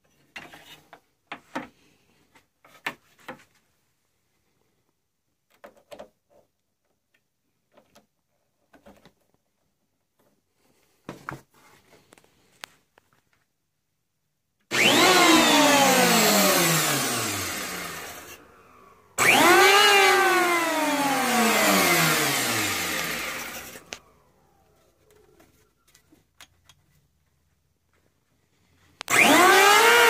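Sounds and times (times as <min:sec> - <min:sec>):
electric planer whining: 0:14.7 - 0:18.6, 0:19.2 - 0:24.0, 0:29.1 - 0:30.0.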